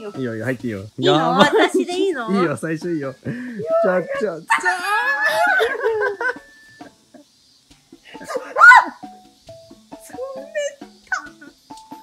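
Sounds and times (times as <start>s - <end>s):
voices: 0.0s - 7.3s, 10.0s - 11.6s
long high wavering cry: 3.6s - 6.9s, 8.2s - 9.0s.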